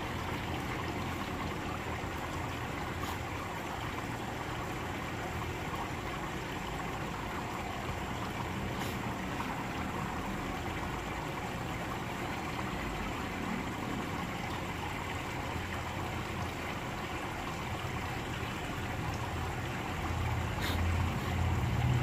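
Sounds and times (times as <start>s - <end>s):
water running and trickling: 0.0s - 22.0s.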